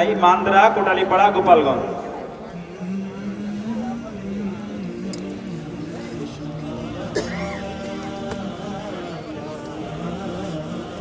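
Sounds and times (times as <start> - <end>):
voices over public address: 0.0 - 11.0.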